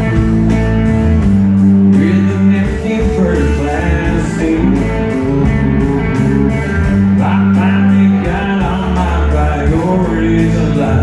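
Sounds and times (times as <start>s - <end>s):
guitar: 0.0s - 11.0s
live country band playing: 0.0s - 11.0s.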